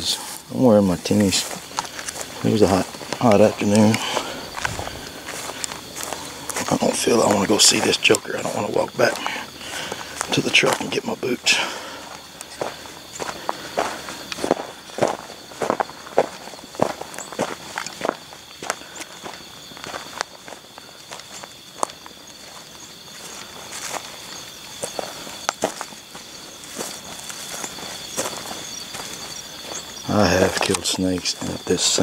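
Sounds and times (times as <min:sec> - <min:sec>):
footsteps on stony ground: 0:00.0 - 0:32.0.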